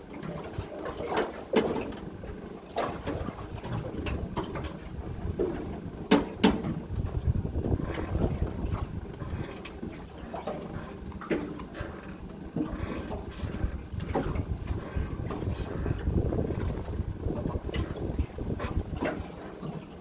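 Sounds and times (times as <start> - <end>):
wind buffeting microphone: 2.1 - 20.0.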